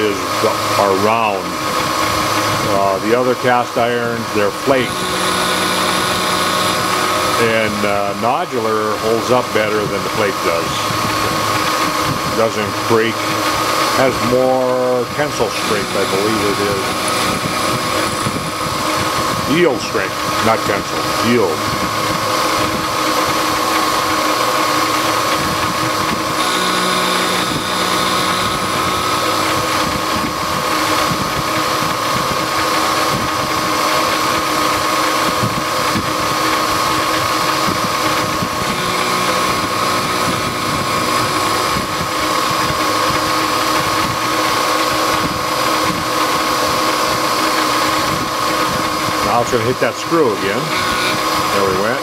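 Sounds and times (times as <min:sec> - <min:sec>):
milling machine whine: 0:00.0 - 0:52.0.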